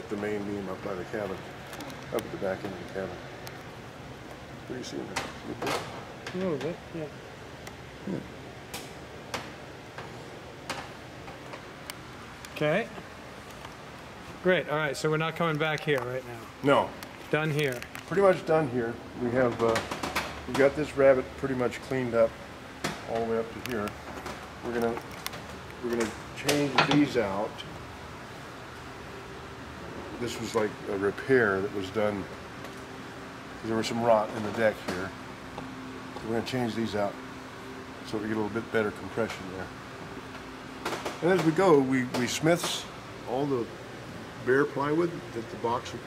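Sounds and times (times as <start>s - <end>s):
steady background hiss: 0.0s - 46.0s.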